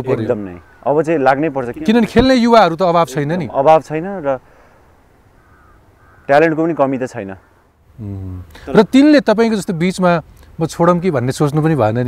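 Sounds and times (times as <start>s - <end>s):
crow cawing loudly: 5.3s - 6.4s.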